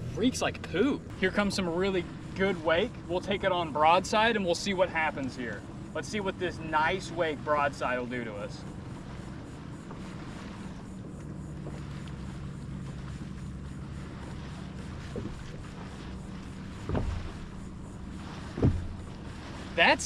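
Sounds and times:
light wind: 0.0s - 20.0s
steady low hum: 0.0s - 20.0s
waves thumping boat hull: 0.0s - 20.0s.

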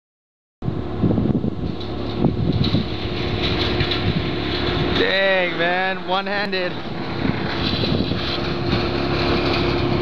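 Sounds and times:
wind buffeting microphone: 0.6s - 10.0s.

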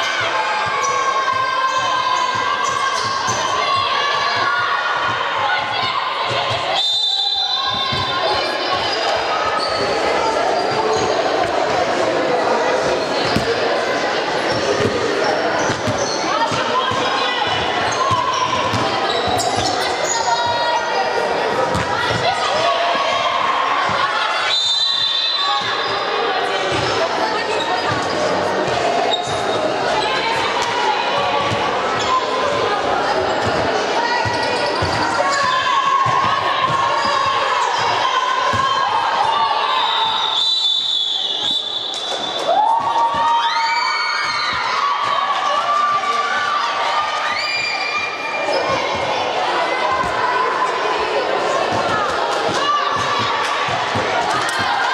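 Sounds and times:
players shouting: 0.0s - 54.9s
voices echoing in hall: 0.0s - 54.9s.

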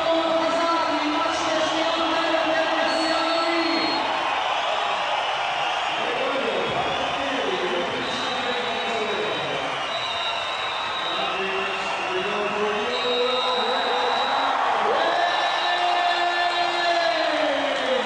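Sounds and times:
commentator talking: 0.0s - 4.1s, 6.0s - 9.7s, 11.1s - 18.0s
crowd of spectators: 0.0s - 18.0s.

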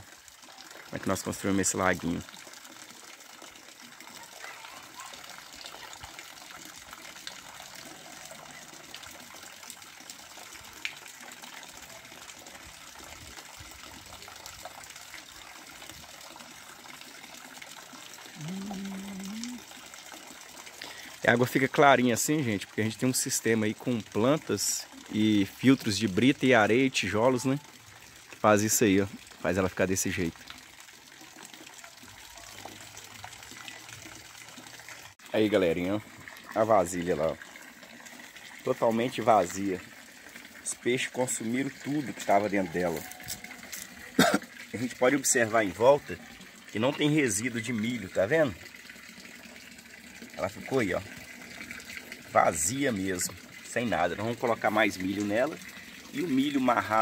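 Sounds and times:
water running into pond: 0.0s - 57.0s.

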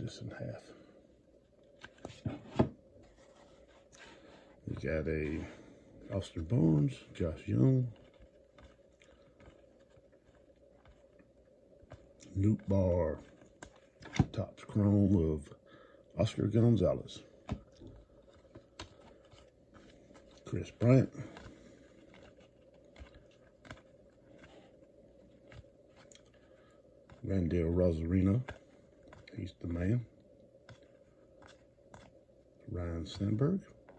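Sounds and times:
faint steady hum: 0.0s - 33.9s
cards sliding ticks and rustles: 1.4s - 5.4s, 6.1s - 15.2s, 16.2s - 33.9s.

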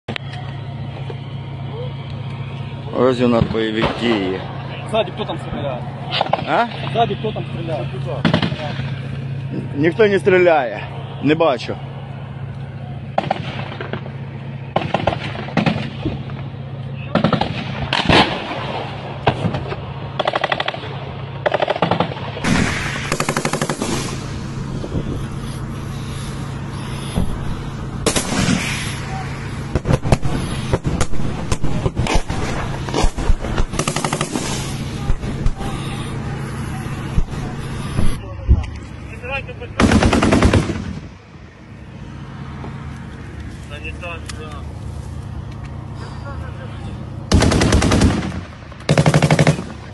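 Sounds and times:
single gunshots: 17.1s - 19.6s, 21.6s - 24.3s, 28.0s - 29.0s, 39.8s - 41.1s
automatic gunfire bursts: 21.5s - 24.2s, 33.0s - 35.2s, 39.8s - 41.0s, 47.3s - 49.8s.

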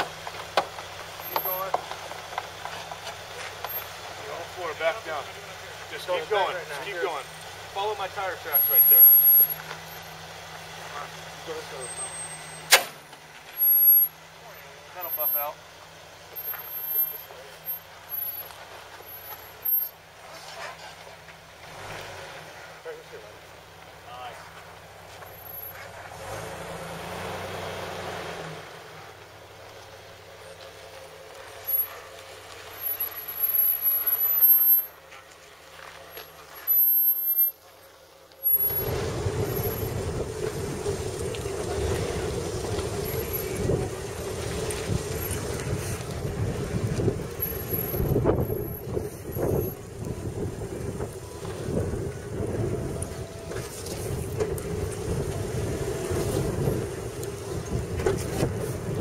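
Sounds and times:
off-road vehicle engine: 0.0s - 59.0s
vehicle knocking over ruts: 0.0s - 59.0s.

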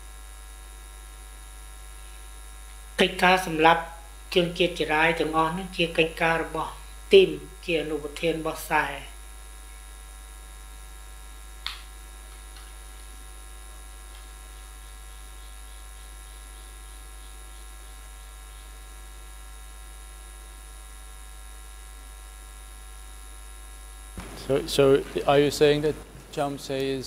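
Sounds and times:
electrical mains hum: 0.0s - 27.0s.

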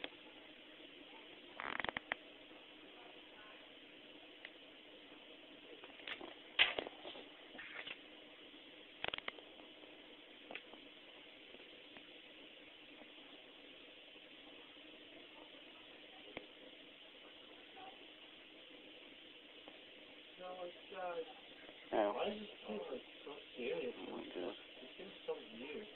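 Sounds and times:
faint background hiss: 0.0s - 25.9s.

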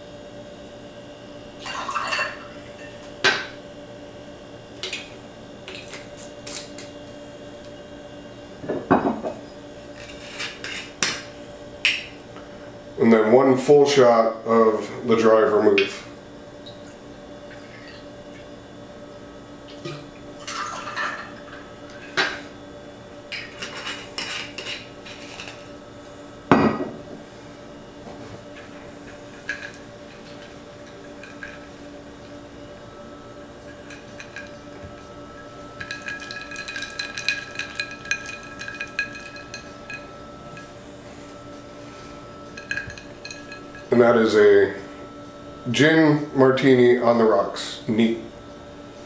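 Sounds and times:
glass and ice clinking: 1.6s - 3.0s, 20.4s - 21.4s, 29.2s - 31.7s, 33.6s - 40.7s, 42.5s - 43.9s.

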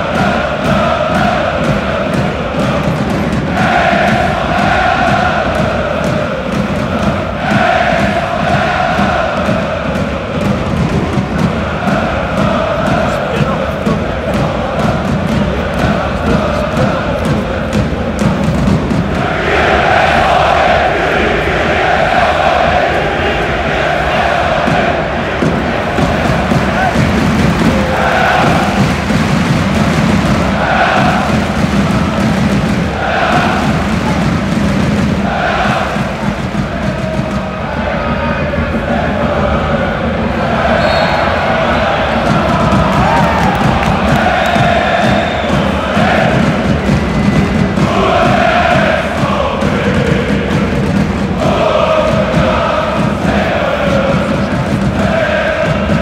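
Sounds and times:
crowd singing a chant: 0.0s - 56.0s.

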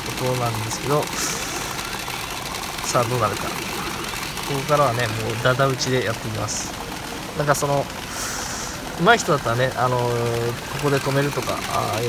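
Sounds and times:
steel balls clattering in machines: 0.0s - 12.0s.

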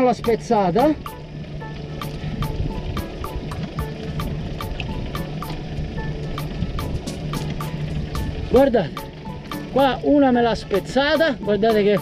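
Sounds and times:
background music with ticking beat: 0.0s - 12.0s.

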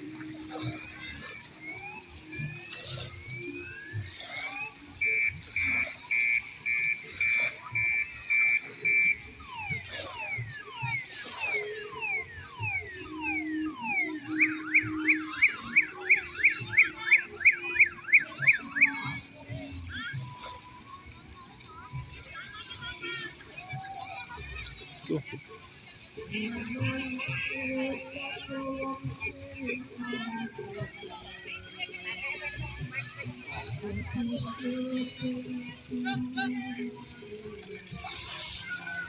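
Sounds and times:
car alarm siren cycling tones: 0.0s - 25.3s, 26.2s - 39.0s.

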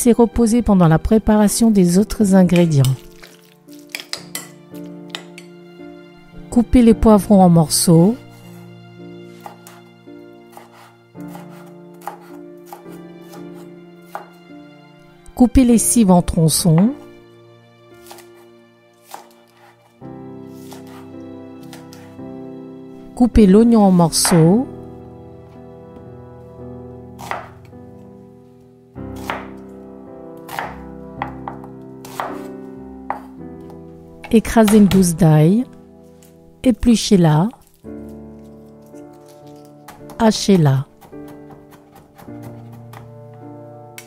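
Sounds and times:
soft background music: 0.0s - 44.0s
knife chopping on wooden board: 9.3s - 9.8s, 10.5s - 14.4s, 18.0s - 19.8s, 20.6s - 21.0s, 21.6s - 22.1s, 27.2s - 27.6s, 29.2s - 29.7s, 30.5s - 32.5s, 33.1s - 33.4s, 40.9s - 43.2s
knife knocking on wooden board: 30.6s - 31.7s, 33.1s - 33.3s.

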